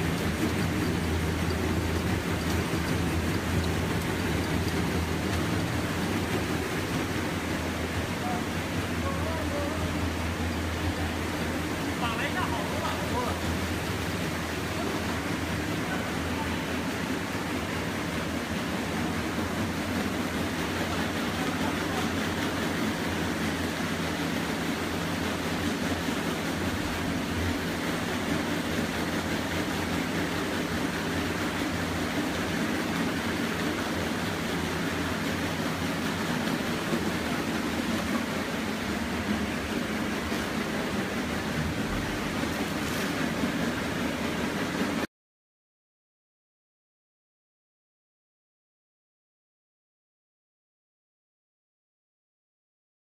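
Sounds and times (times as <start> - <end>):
motor hum: 0.0 - 45.0
churning water rush: 0.0 - 45.1.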